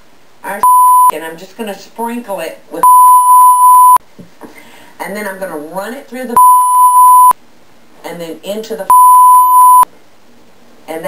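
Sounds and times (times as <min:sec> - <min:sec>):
high-pitched censor beep: 0:00.6 - 0:01.1, 0:02.8 - 0:04.0, 0:06.4 - 0:07.4, 0:08.9 - 0:09.9.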